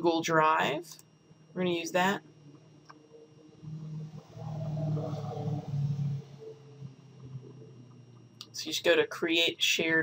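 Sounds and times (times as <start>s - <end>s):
low hum of held notes: 0.0s - 10.0s.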